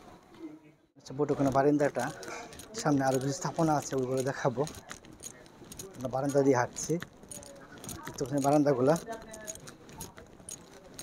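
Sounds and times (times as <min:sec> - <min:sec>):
faint clicks and jingles: 0:01.0 - 0:11.0.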